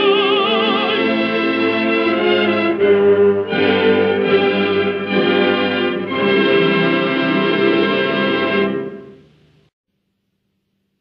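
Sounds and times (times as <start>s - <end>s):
orchestra with brass chord: 0.4s - 9.2s.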